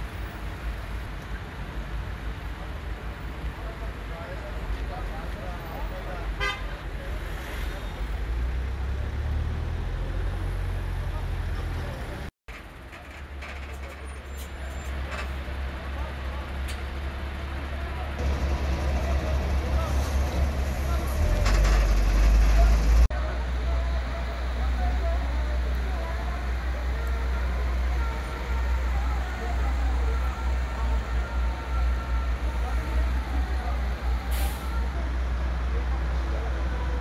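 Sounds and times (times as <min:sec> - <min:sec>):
background voices: 0:02.8 - 0:37.0
vehicle horns: 0:06.4 - 0:06.8.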